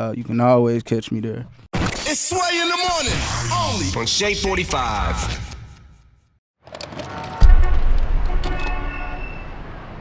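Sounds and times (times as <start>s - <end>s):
deep low hit: 7.4s - 9.2s.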